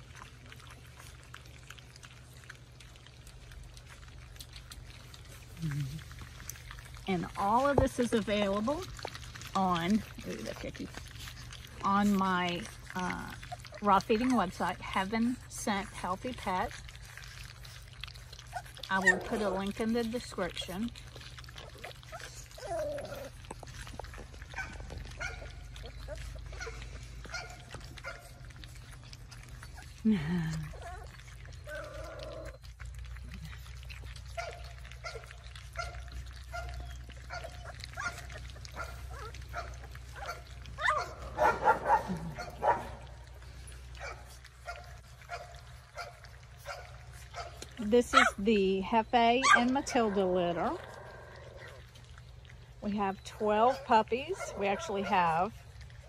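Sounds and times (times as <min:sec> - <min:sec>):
wet smacking eating sounds: 0:00.0 - 0:48.4, 0:49.5 - 0:52.8, 0:53.4 - 0:56.0
puppies whimpering and yipping: 0:00.0 - 0:56.0.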